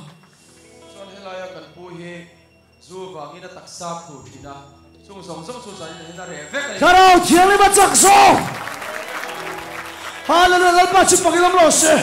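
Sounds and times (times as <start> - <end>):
preacher shouting amplified: 6.8 - 8.6, 10.3 - 12.0
congregation applauding: 6.9 - 12.0.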